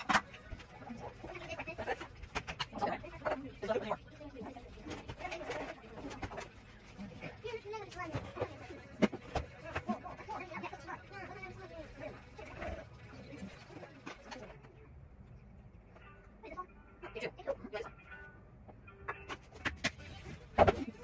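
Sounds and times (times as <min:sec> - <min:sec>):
quiet indistinct talking: 0:00.0 - 0:18.0.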